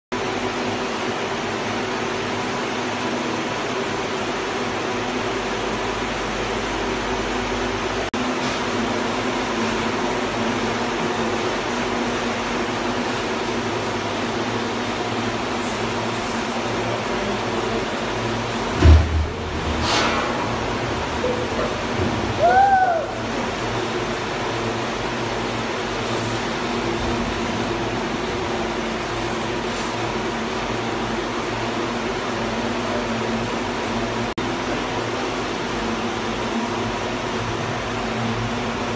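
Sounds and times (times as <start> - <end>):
machine humming: 0.2 - 38.9
heavy low thud: 18.7 - 20.6.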